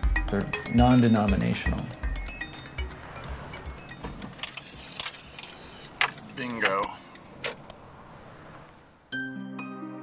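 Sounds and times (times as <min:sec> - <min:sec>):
quiet background music with beats: 0:00.0 - 0:04.3
light metallic jingling: 0:02.6 - 0:08.0.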